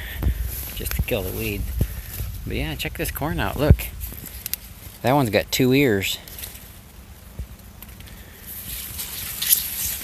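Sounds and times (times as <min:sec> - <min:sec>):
corn leaves rustling: 0:00.0 - 0:10.0
sharp crackles: 0:00.3 - 0:10.0.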